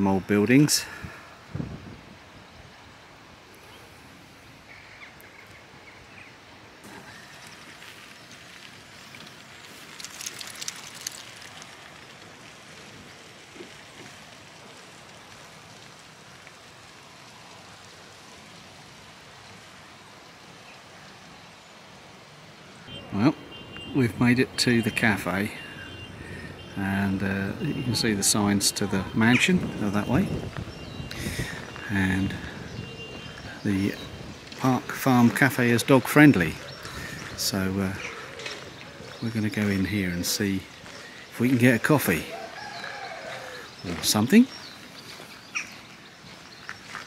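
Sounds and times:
steady hiss of wind: 0.0 - 47.0.

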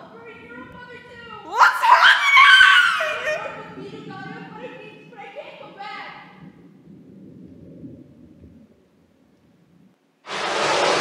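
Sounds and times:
muffled rumble of water: 0.0 - 1.6, 3.2 - 11.0.

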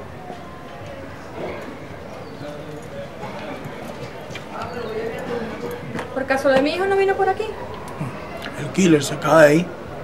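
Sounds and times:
faint background voices: 0.0 - 10.0
footsteps on concrete: 3.3 - 6.8.

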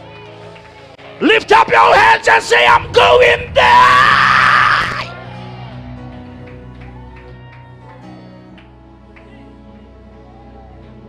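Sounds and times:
person shouting: 1.2 - 5.1
soft backing music with chords: 5.1 - 11.0.

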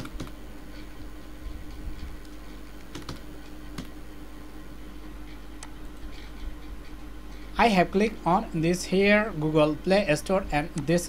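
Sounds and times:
computer keyboard keystrokes: 0.0 - 0.4, 2.2 - 3.9
steady low hum: 0.0 - 11.0.

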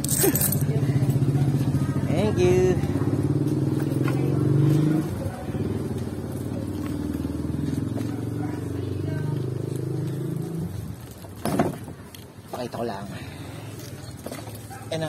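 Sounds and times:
small motorcycle engine: 0.6 - 11.2.

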